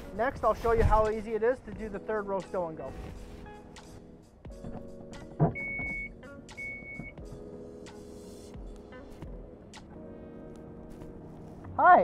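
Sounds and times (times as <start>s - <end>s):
warning chime beeps: 5.6s - 7.2s.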